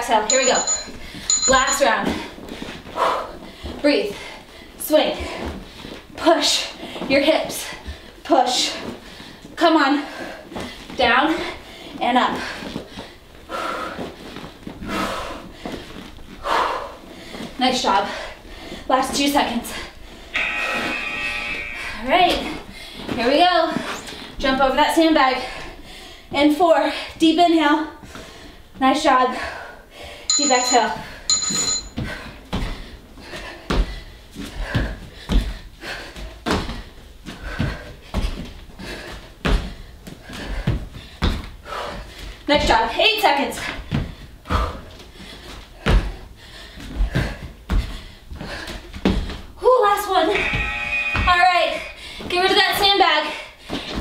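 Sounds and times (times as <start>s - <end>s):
short high electronic beep: 20.4s - 21.9s, 50.4s - 51.9s.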